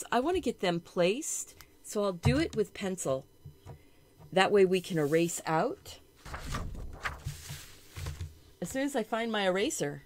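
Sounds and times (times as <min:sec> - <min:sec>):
paper rustling: 0:06.2 - 0:08.4.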